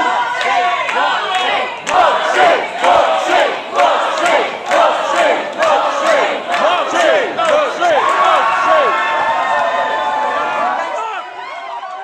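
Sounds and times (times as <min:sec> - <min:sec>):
audience cheering and shouting: 0:00.0 - 0:12.0.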